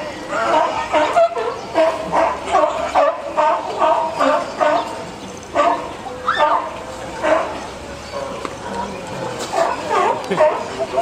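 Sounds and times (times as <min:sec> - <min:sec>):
sea lion barking: 0:00.2 - 0:11.0.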